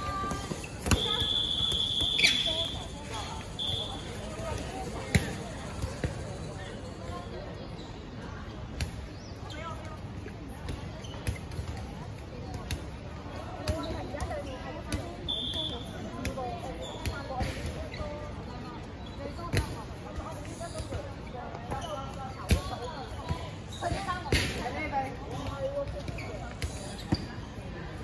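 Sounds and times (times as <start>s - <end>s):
balls hitting hard court: 0.0s - 6.3s, 21.0s - 27.3s
players' voices and calls: 0.0s - 28.0s.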